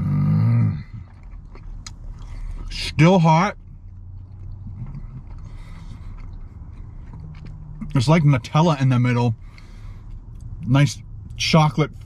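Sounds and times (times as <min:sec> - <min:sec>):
low steady hum: 0:00.0 - 0:12.0
person chewing with mouth closed: 0:00.5 - 0:02.9, 0:03.6 - 0:08.4.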